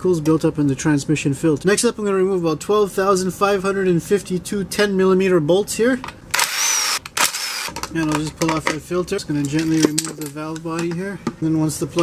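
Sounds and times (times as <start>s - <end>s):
cordless drill whining: 6.4s - 7.8s.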